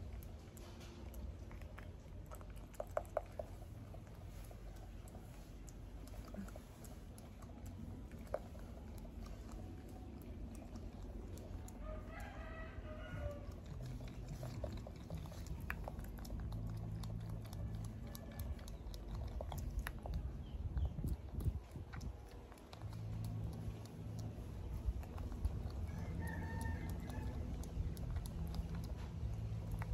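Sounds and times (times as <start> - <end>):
low steady hum: 0.0 - 29.9
rooster crowing: 11.8 - 13.5, 25.9 - 27.6.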